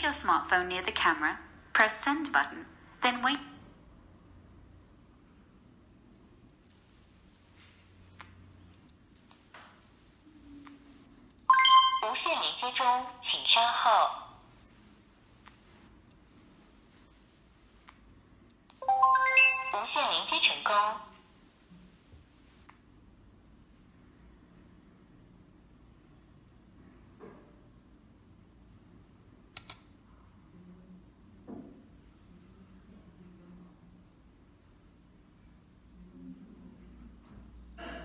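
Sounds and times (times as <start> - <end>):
high-pitched electronic chirps: 6.5 - 22.8.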